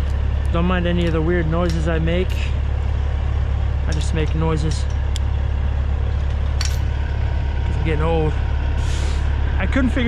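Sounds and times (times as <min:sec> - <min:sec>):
diesel truck engine idling: 0:00.0 - 0:10.0
metallic clink of gate chain: 0:06.6 - 0:06.9.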